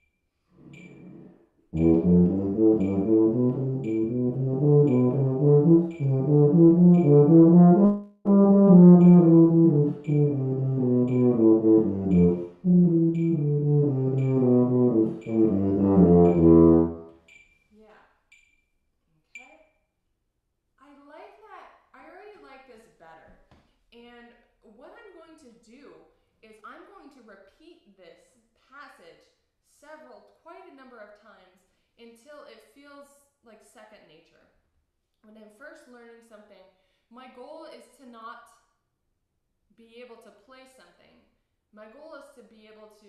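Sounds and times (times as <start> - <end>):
tuba playing notes: 1.8 - 17.1
metronome clicking: 1.8 - 17.4.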